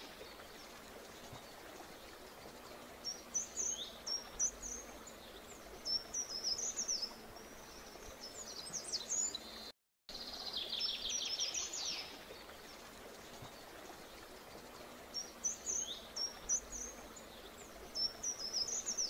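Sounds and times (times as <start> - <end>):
faint steady hiss: 0.0 - 19.0
bird singing: 14.6 - 19.0.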